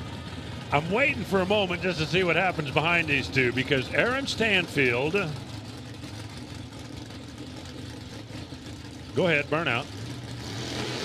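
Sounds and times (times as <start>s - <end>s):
distant car engine idling: 0.0s - 11.0s.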